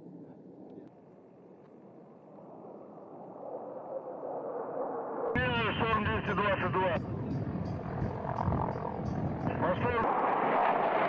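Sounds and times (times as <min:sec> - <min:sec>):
military jets flying over: 0:00.0 - 0:11.0.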